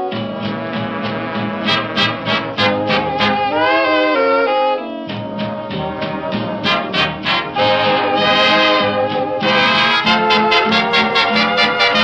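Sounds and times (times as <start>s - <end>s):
swing big band playing: 0.0s - 12.0s.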